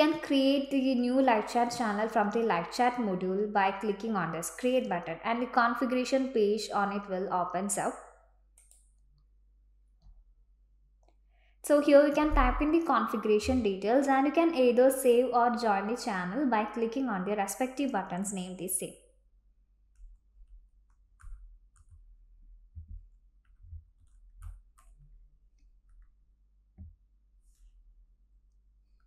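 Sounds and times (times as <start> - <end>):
computer mouse clicks: 8.6 - 9.0.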